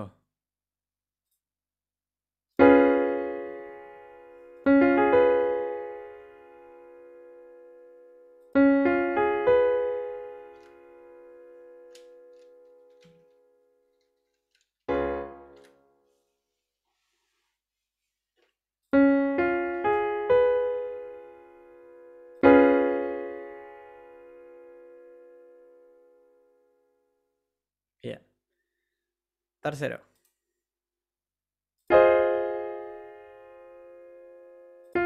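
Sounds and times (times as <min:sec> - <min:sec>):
piano chord notes: 0:02.6 - 0:13.7, 0:14.9 - 0:16.0, 0:19.0 - 0:26.6, 0:31.9 - 0:35.0.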